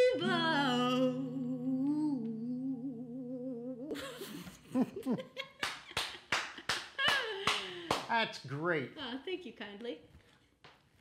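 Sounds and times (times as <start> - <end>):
hands clapping: 5.6 - 8.2.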